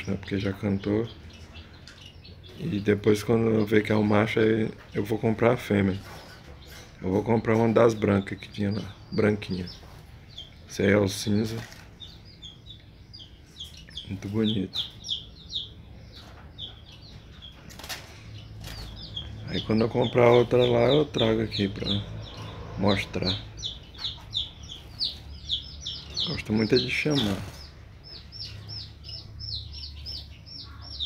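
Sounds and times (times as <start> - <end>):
sparrow chirping: 0.0 - 31.0.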